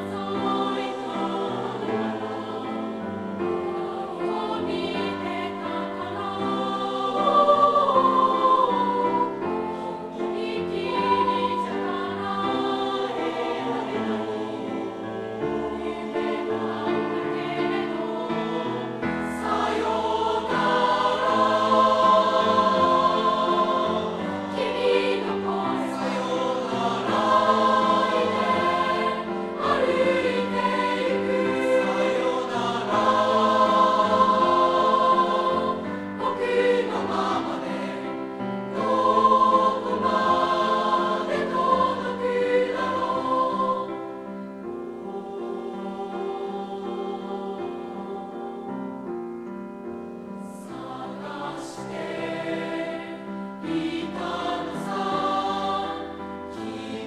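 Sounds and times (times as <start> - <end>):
choir singing in harmony: 0.0 - 57.0
grand piano: 0.0 - 57.0.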